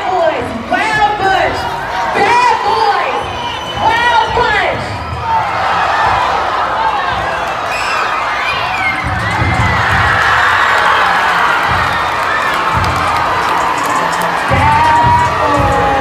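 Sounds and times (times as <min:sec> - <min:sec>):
crowd cheering and shouting: 0:00.0 - 0:16.0.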